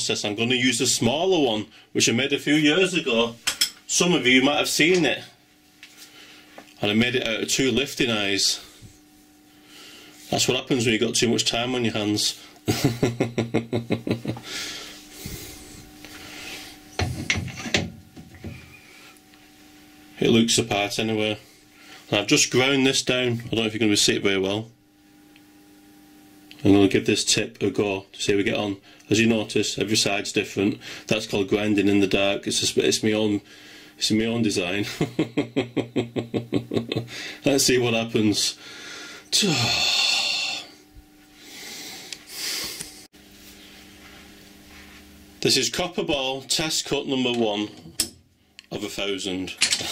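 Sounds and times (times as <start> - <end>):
lathe humming: 2.5 - 34.8
man laughing breathily: 12.6 - 15.9, 34.9 - 37.4.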